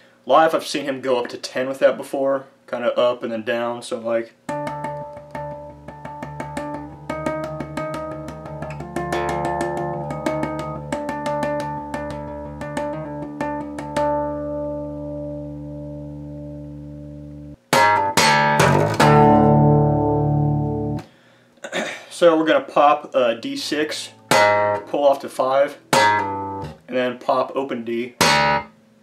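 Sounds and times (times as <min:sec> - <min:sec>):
bass guitar harmonics ringing: 0:04.5 - 0:21.0, 0:23.5 - 0:27.2, 0:28.0 - 0:28.8
hard-struck bass notes: 0:04.5 - 0:21.1, 0:23.6 - 0:25.1, 0:25.8 - 0:26.9, 0:28.1 - 0:28.7.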